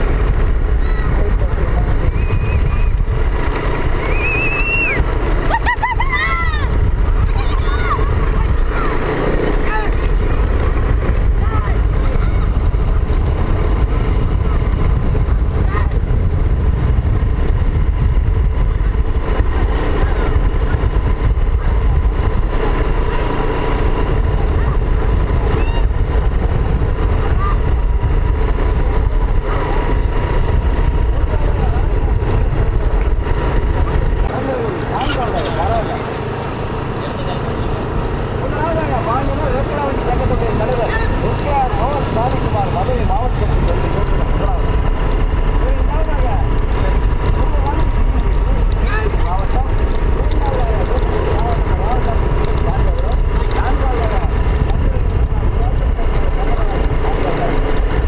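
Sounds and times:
wind on microphone: 0.0 - 34.9, 37.7 - 58.0
vehicle rumble: 0.0 - 58.0
men calling: 34.3 - 44.8.

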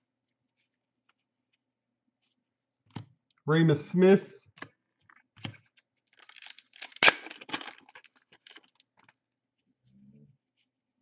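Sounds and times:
foil wrapper crinkling and ripping: 6.1 - 8.8.

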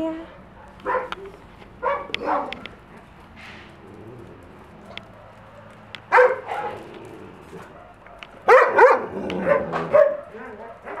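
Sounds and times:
dogs barking: 0.3 - 3.3, 4.7 - 11.0.

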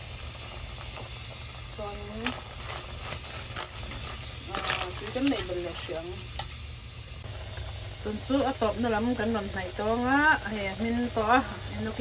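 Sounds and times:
pot of broth boiling: 0.0 - 12.0.

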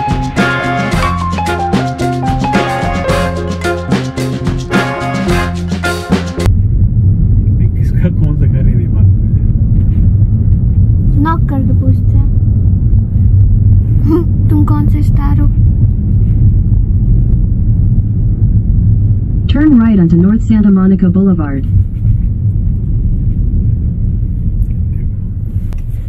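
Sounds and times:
road and engine noise in car: 0.0 - 26.0.

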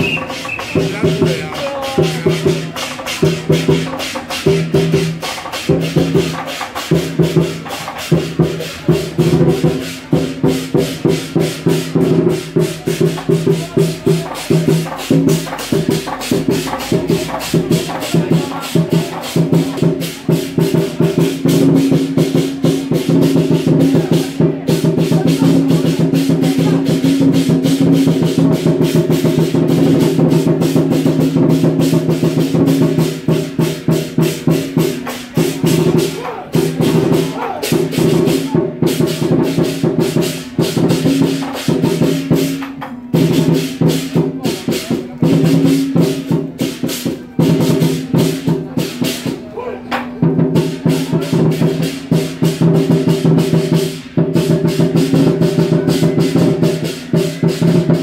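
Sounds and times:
clashing cymbals: 0.0 - 49.4, 50.2 - 58.0
drum beating: 0.0 - 58.0.

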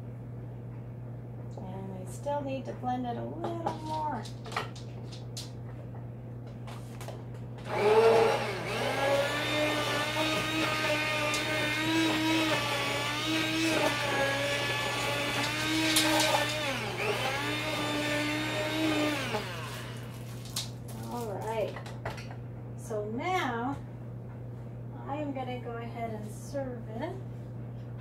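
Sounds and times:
immersion blender whirring: 7.6 - 20.6.

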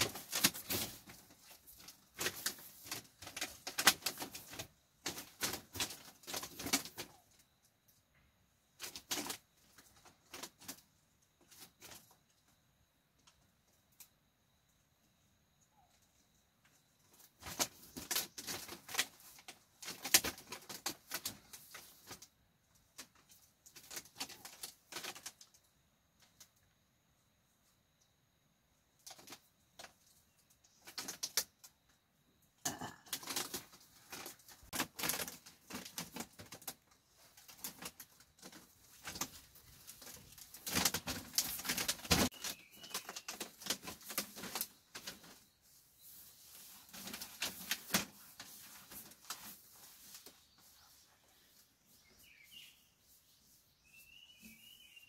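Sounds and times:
clothes rustling: 33.2 - 54.0.

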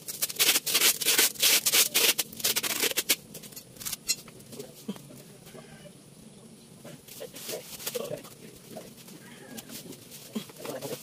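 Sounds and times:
adhesive tape pulled off roll: 0.0 - 4.0.

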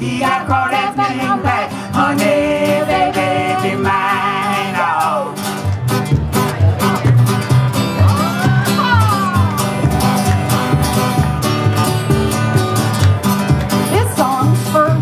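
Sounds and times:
strummed acoustic guitar: 0.0 - 15.0
upright bass: 0.0 - 15.0
woman singing wordless vocal: 13.9 - 15.0.

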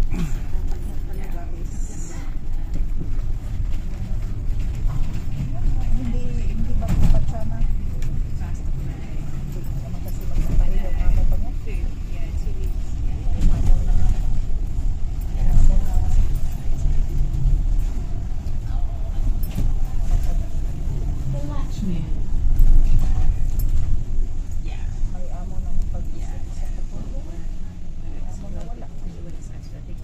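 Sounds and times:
bus engine and road rumble: 0.0 - 30.0
faint passenger voices: 0.0 - 30.0.

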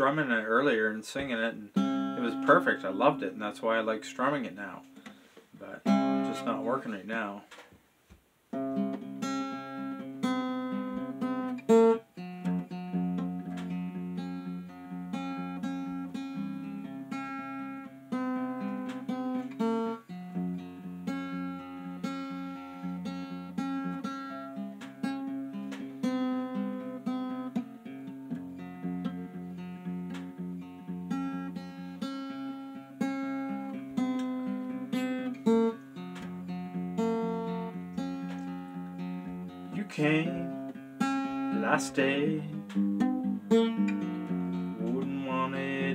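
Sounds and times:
acoustic guitar chords: 0.0 - 7.6, 8.5 - 45.9.

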